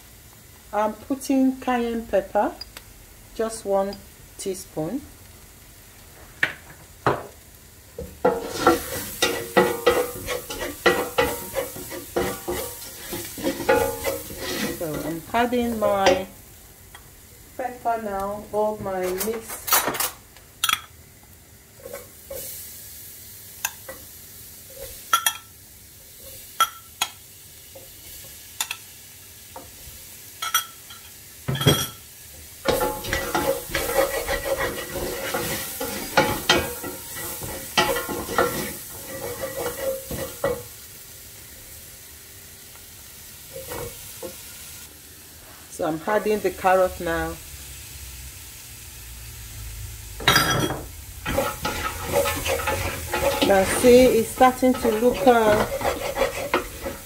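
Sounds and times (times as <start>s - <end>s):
vegetables sizzling in a pot: 0.0s - 57.0s
spoon stirring and scraping: 8.2s - 16.2s, 32.6s - 40.6s, 50.3s - 57.0s.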